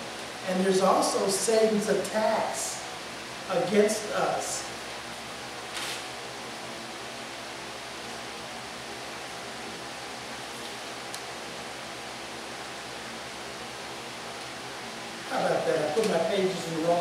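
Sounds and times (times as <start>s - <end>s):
steady hiss: 0.0s - 9.1s.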